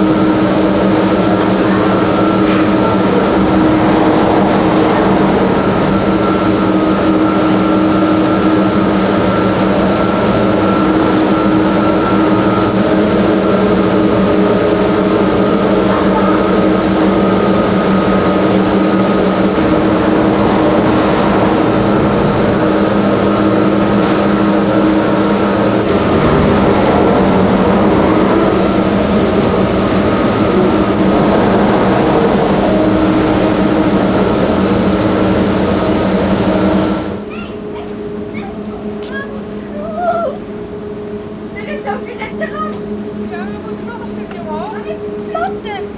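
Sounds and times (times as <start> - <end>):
gondola lift machinery droning: 0.0 - 45.9.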